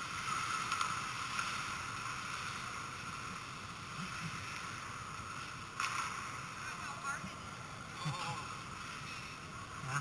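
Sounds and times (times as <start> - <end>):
steady background hiss: 0.0 - 10.0
sharp crack from hockey play: 5.8 - 6.3.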